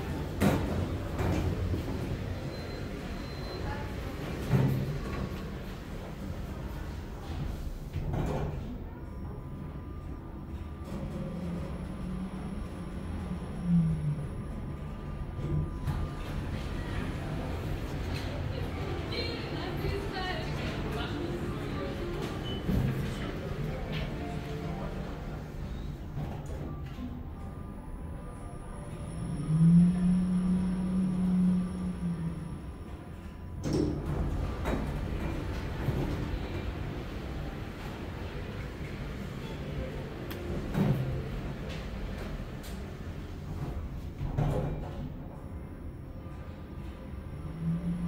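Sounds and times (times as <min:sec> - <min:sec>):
lift humming: 0:08.9 - 0:44.2.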